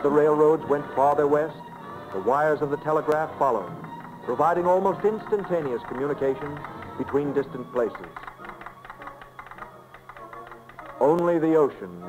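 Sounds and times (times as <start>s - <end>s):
rapid clicking: 3.1s - 11.5s.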